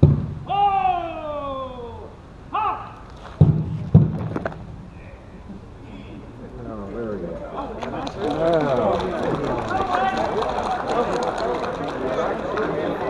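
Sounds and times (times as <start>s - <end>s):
drill command shouted: 0.5s - 3.0s.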